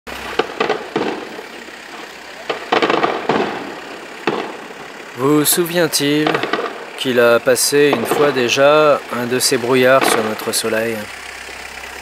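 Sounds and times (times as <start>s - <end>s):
fireworks bangs: 0.1s - 11.1s
rumbling echo: 0.1s - 12.0s.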